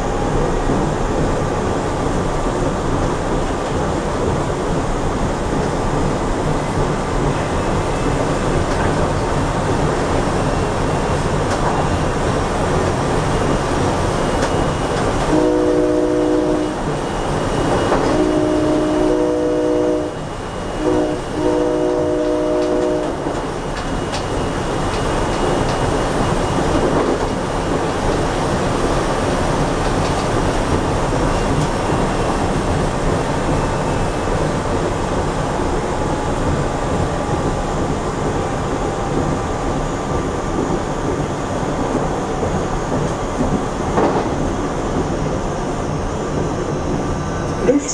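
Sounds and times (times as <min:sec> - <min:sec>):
train running noise: 0:00.0 - 0:47.9
train horn: 0:15.3 - 0:16.9, 0:18.0 - 0:23.3.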